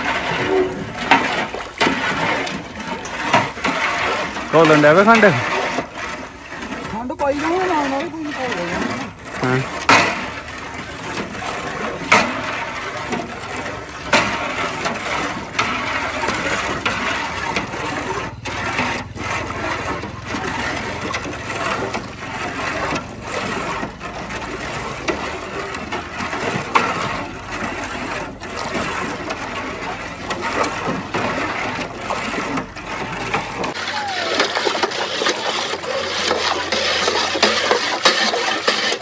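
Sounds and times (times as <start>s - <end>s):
rod scraping and swishing in pot: 0.0s - 39.0s.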